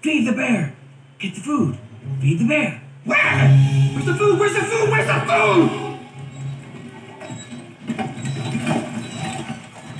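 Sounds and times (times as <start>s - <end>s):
low hum: 1.7s - 8.3s
wagon wheels clicking and rattling: 7.2s - 9.9s.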